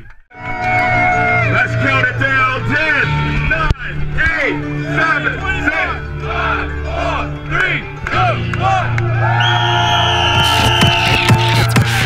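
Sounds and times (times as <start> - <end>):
crowd whooping and cheering: 0.3 - 2.1, 8.1 - 12.0
loud music with bass notes: 1.0 - 12.0.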